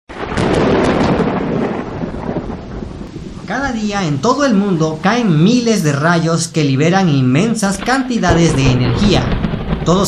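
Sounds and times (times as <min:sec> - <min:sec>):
thunderclap rumbling: 0:00.1 - 0:06.2, 0:06.9 - 0:10.0.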